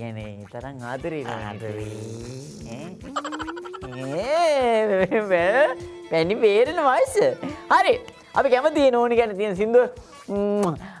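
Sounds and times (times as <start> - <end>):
man making croaky comic sound: 1.8 - 4.8.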